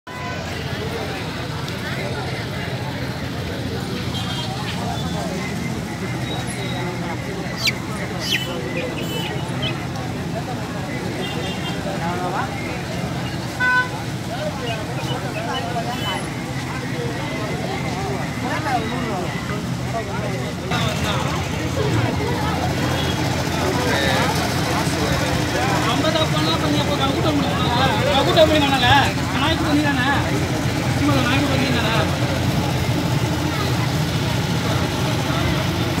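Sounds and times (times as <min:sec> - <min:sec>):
people talking: 0:00.1 - 0:36.0
traffic hum: 0:00.1 - 0:36.0.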